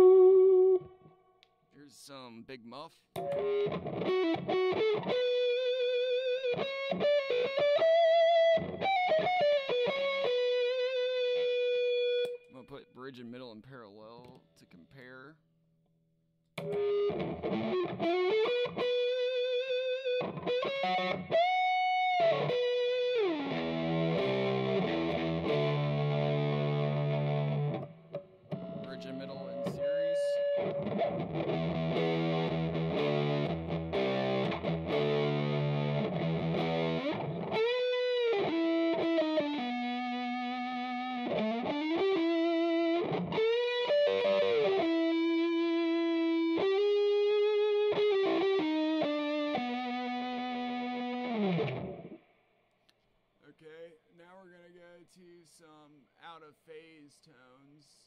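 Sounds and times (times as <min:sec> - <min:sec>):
electric guitar lead lines: 0:00.0 - 0:01.3, 0:03.2 - 0:12.6, 0:16.6 - 0:52.3
distorted electric guitar chords: 0:03.2 - 0:12.4, 0:16.6 - 0:52.2.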